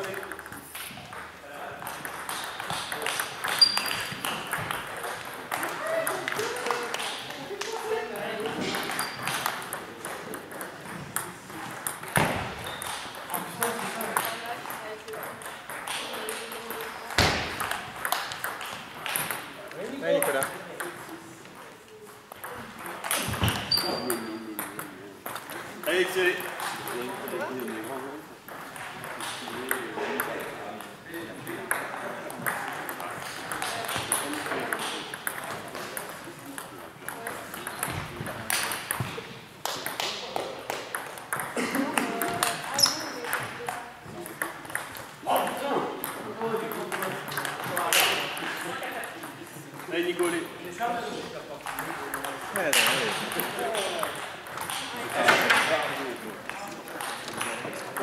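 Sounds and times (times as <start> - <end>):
background chatter of voices: 0.0 - 58.0
table tennis ball clicking: 8.4 - 19.5, 28.5 - 39.1, 40.7 - 49.9, 51.6 - 55.7.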